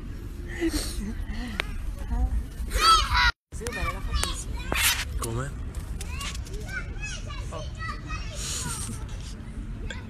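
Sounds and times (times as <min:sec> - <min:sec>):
children calling and shouting: 0:01.2 - 0:05.2, 0:05.8 - 0:10.0.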